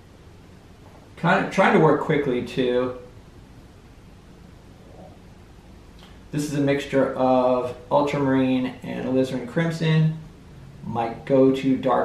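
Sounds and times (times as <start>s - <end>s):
faint low hum with hiss: 0.0s - 12.0s.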